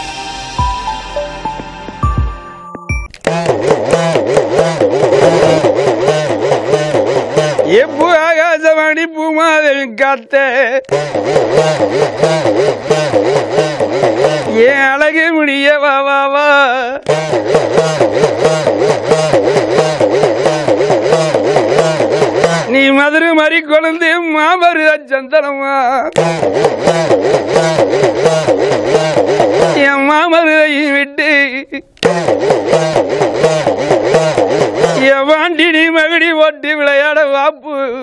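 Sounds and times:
hourglass drum pitch swooping: 0:00.0 - 0:03.1
talking drum beaten fast: 0:00.6 - 0:08.5, 0:10.9 - 0:15.0, 0:17.1 - 0:23.2, 0:26.2 - 0:30.5, 0:32.0 - 0:35.4.

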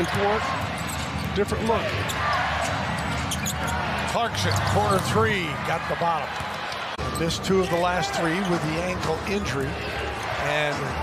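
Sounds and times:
crowd noise hum: 0:00.0 - 0:11.0.

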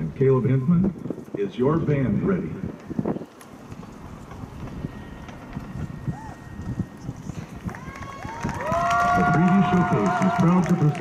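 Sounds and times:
wind on microphone: 0:00.0 - 0:10.9
steady held tones: 0:02.7 - 0:10.1.

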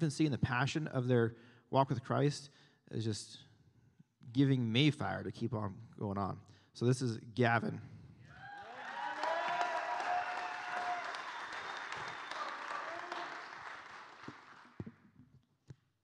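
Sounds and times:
audience applauding: 0:08.4 - 0:14.9.

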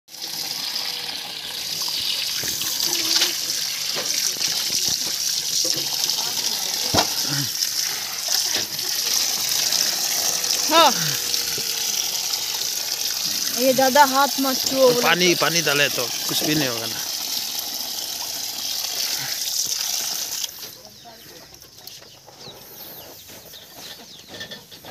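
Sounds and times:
water running into plastic tub: 0:00.1 - 0:20.8
fish splashing: 0:02.0 - 0:15.3.

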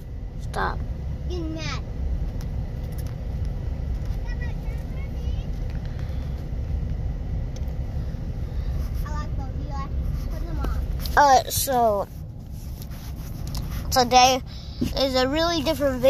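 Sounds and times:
car cabin rumble: 0:00.0 - 0:16.0.

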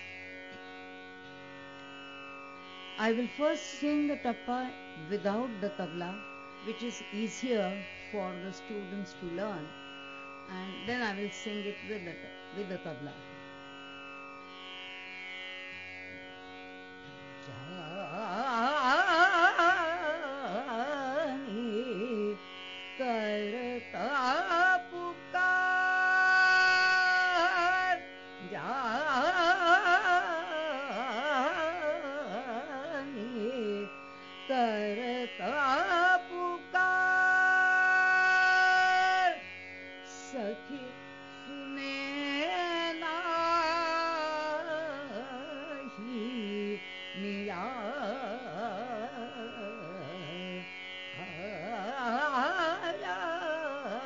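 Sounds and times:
tanpura drone: 0:00.0 - 0:54.0
woman singing: 0:03.0 - 0:09.7, 0:10.5 - 0:13.2, 0:17.8 - 0:22.4, 0:23.0 - 0:33.9, 0:34.5 - 0:39.4, 0:40.1 - 0:50.6, 0:51.2 - 0:54.0.

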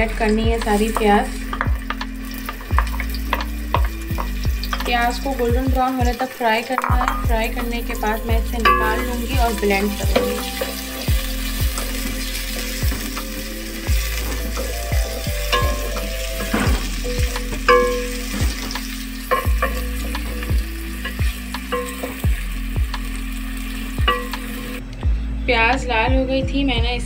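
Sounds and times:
onions sizzling in hot oil: 0:00.0 - 0:24.8.

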